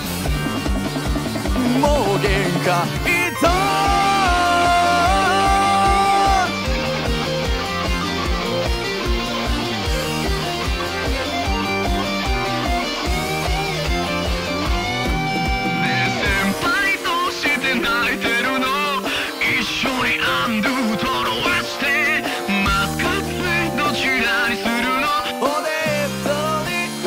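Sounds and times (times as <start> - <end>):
rock band backing track: 0.0 - 27.0
man singing: 1.5 - 6.7, 15.8 - 27.0.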